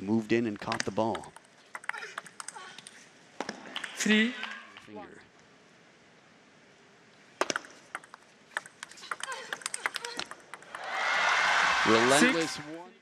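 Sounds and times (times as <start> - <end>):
table tennis ball clicking: 0.5 - 4.0, 7.4 - 10.9
crowd applause: 10.6 - 12.9.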